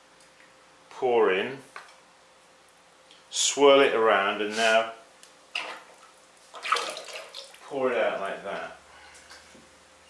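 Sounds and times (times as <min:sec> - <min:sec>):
liquid splash: 0:05.5 - 0:07.6.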